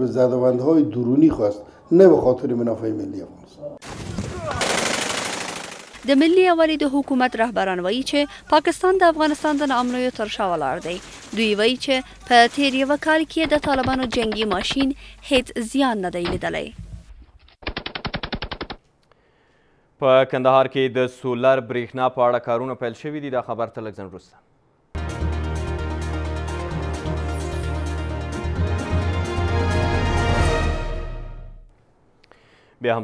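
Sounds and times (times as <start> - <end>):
automatic gunfire: 3.8 - 6.2, 10.8 - 11.8.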